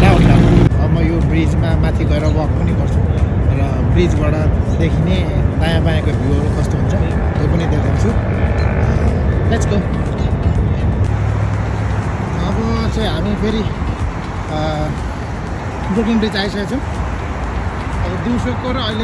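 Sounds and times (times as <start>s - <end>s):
people's voices: 0.0s - 11.1s
music: 0.0s - 19.0s
road traffic rumble: 0.0s - 19.0s.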